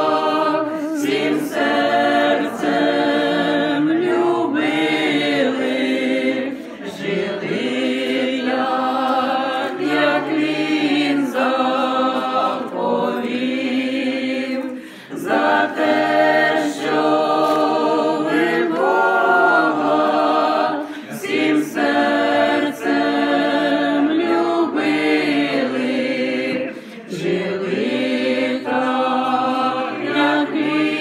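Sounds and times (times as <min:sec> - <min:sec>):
group singing unaccompanied: 0:00.0 - 0:31.0.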